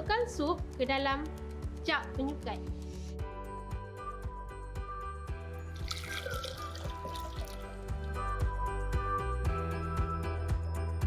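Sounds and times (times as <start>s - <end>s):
background music: 0.0s - 11.0s
soup pouring into blender jar: 5.7s - 8.2s.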